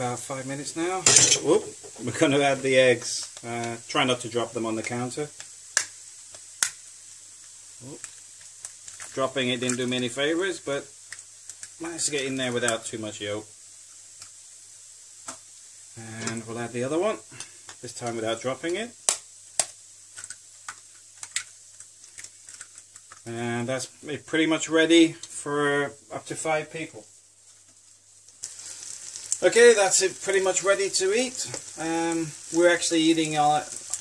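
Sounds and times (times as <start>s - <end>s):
meat sizzling in a pan: 0.0s - 34.0s.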